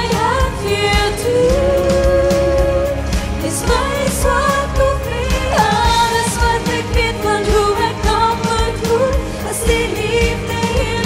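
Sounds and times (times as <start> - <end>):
backing track with steady beat: 0.0 - 11.0
woman singing a pop song: 0.0 - 11.0.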